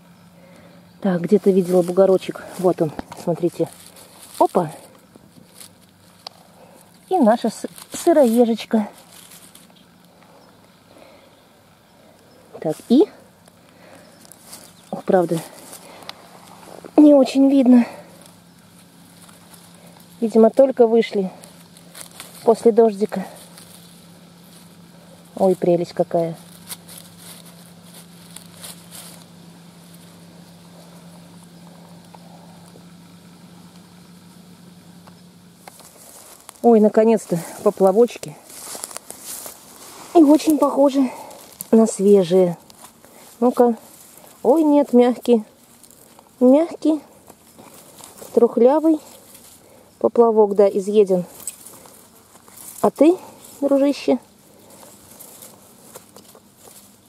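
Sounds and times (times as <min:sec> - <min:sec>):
dry leaves rustling: 0:00.0 - 0:57.0
faint low hum: 0:00.0 - 0:57.0
light scattered ticks: 0:00.1 - 0:57.0.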